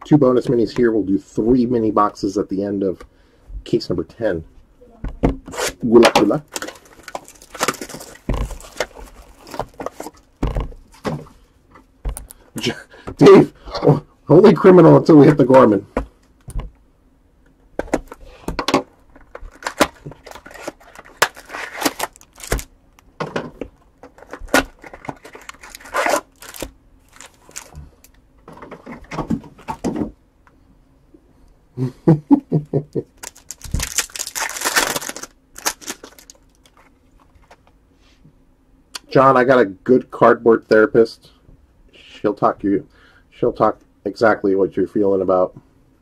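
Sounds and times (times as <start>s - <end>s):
foil packs crinkling: 6.3s - 10.3s, 19.2s - 22.7s, 24.0s - 28.2s, 33.2s - 37.6s
foil tearing rip: 20.5s - 22.7s, 25.4s - 27.7s, 33.2s - 36.3s.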